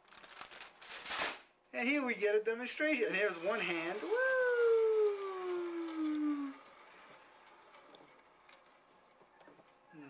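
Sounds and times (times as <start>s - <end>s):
person voicing spooky oooh: 4.0s - 6.6s.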